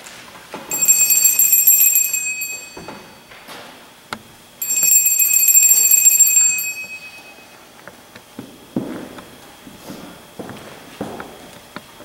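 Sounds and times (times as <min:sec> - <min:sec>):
small metal bell ringing: 0:00.7 - 0:03.4, 0:04.6 - 0:07.6.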